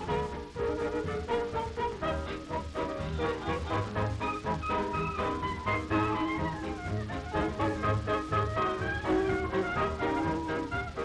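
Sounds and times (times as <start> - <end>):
brass and reeds: 0.0 - 11.0
dance band playing swing music: 0.0 - 11.0.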